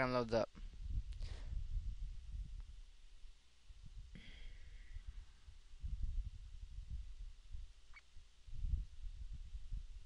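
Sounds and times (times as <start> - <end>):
breath puffs on microphone: 0.6 - 2.0, 4.0 - 6.0.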